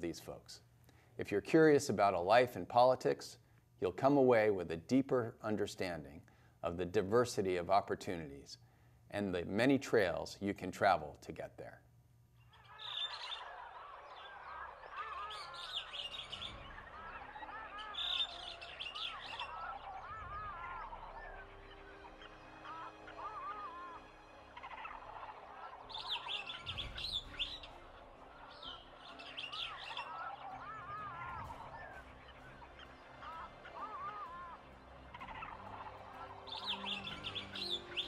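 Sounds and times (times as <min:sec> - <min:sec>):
high bird chirps: 0:12.4 - 0:38.0
many birds calling and chirping: 0:12.4 - 0:38.0.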